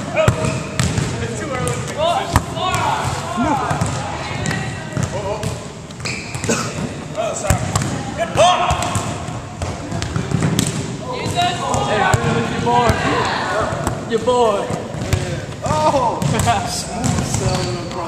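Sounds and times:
players' voices and calls: 0.0 - 18.0
volleyballs bouncing on hardwood: 0.3 - 8.0, 8.6 - 13.0.

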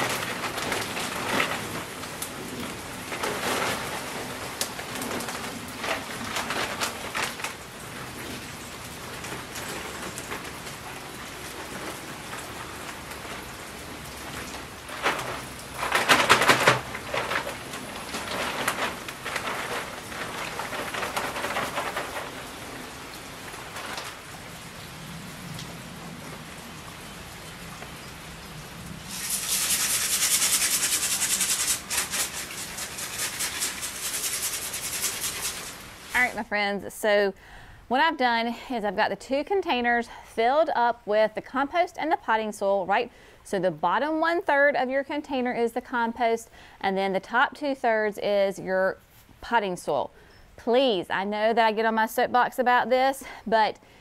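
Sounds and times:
plastic bags crinkling: 0.0 - 24.5, 29.1 - 36.4
soil pouring from bags: 0.0 - 24.6, 29.0 - 36.2.

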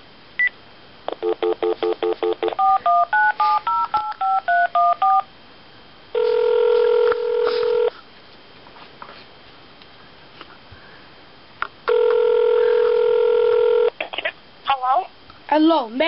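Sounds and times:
phone ringing tone: 1.1 - 5.3, 6.2 - 7.9, 11.9 - 13.9
phone key beep: 1.2 - 5.2
pulsed dial-tone beeps: 1.2 - 5.3
touch-tone digits dialing: 1.2 - 5.3.

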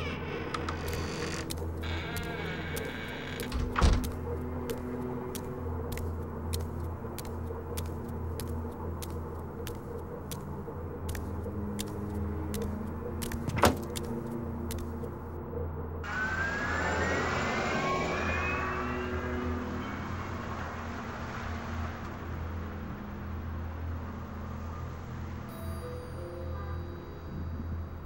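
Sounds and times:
street traffic: 3.5 - 15.4, 16.1 - 28.0
rising whine: 16.0 - 22.2.

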